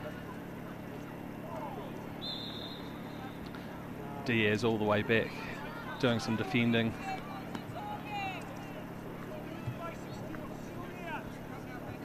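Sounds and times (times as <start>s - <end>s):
distant shouts of players: 0.0s - 12.0s
low steady hum: 0.0s - 12.0s
faint high whistle-like tone: 2.2s - 3.4s.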